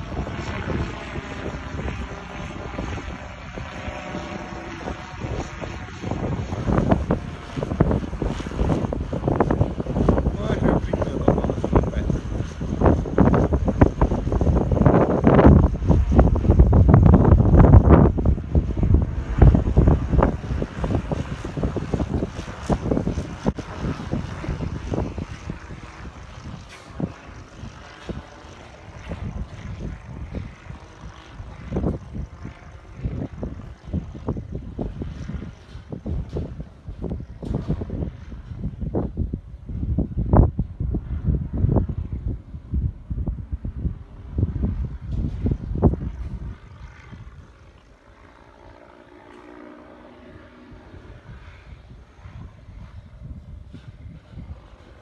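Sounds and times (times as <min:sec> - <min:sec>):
small aircraft engine and propeller: 0:00.0 - 0:55.0
wind buffeting microphone: 0:00.0 - 0:55.0.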